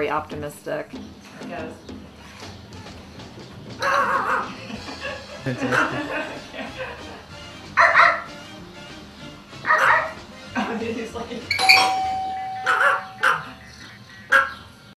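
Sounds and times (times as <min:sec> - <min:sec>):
small dog yapping: 0:03.8 - 0:04.5, 0:07.8 - 0:08.3, 0:09.6 - 0:10.2, 0:12.6 - 0:13.6, 0:14.3 - 0:14.6
chime tone ringing: 0:11.5 - 0:13.6.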